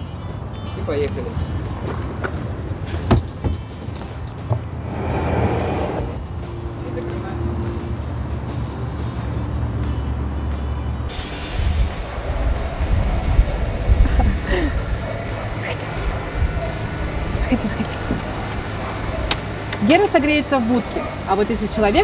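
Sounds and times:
van engine rumbling: 0.0 - 22.0
scraping noise: 4.8 - 6.2.

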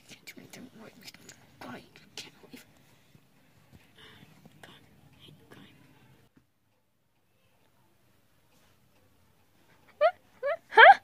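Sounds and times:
faint whispering: 0.0 - 6.3.

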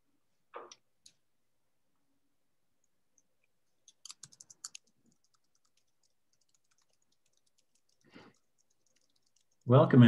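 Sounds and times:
faint clicks: 2.8 - 9.7.

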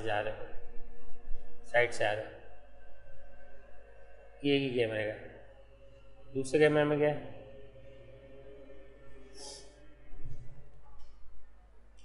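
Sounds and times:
man speaking: 1.7 - 2.3, 6.4 - 7.3.

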